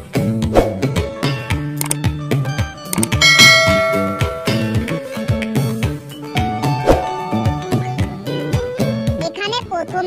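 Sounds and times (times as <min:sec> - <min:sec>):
music with plucked-string beat: 0:00.9 - 0:09.2
bell ding: 0:03.1 - 0:05.2.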